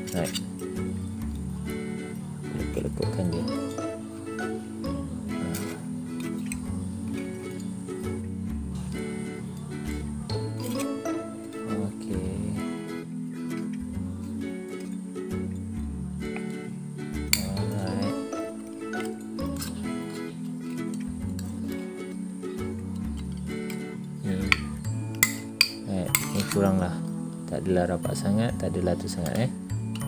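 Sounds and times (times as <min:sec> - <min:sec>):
background music: 0:00.0 - 0:30.0.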